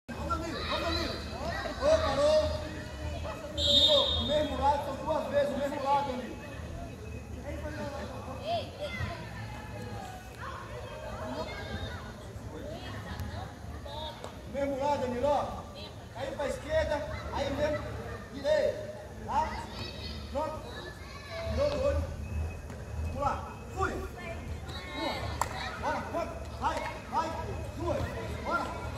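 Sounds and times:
people talking and calling out: 0.0 - 28.9.

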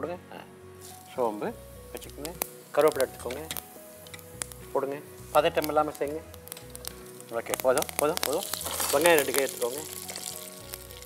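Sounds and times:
seeds sizzling in hot oil: 0.4 - 11.0.

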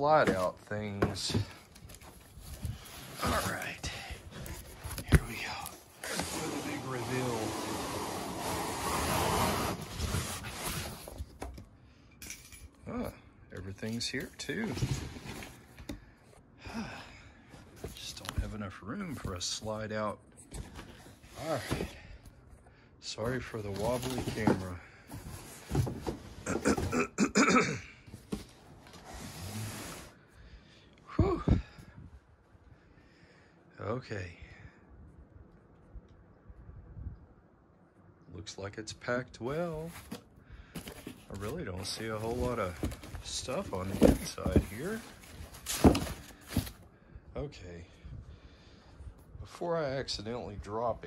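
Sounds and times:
cardboard box scraping: 2.6 - 11.3, 28.3 - 30.2, 40.8 - 46.8
breathy sigh: 16.6 - 17.4.

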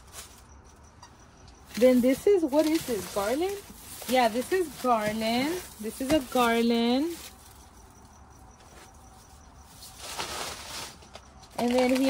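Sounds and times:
garland rustling against plastic: 0.0 - 0.6, 1.6 - 8.0, 8.6 - 12.0.

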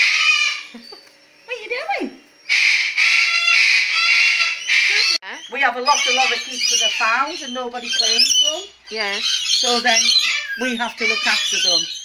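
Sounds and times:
parrot screeching: 0.0 - 12.0.

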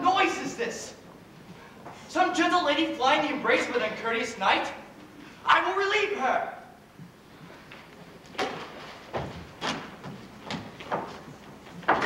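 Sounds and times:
footsteps on stage floor: 1.0 - 2.1, 6.9 - 12.0.

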